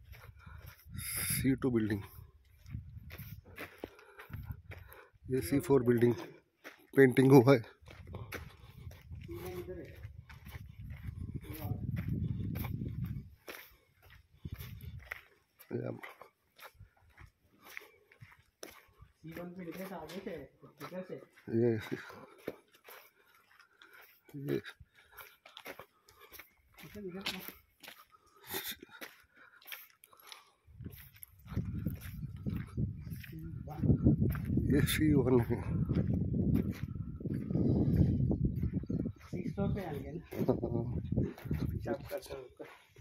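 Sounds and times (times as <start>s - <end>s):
footsteps on dirt and gravel: 0.0s - 43.0s
low rumble on microphone: 30.8s - 39.4s.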